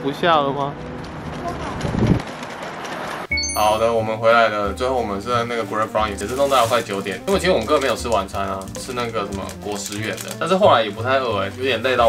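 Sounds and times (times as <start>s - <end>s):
traffic on wet street: 0.0s - 3.3s.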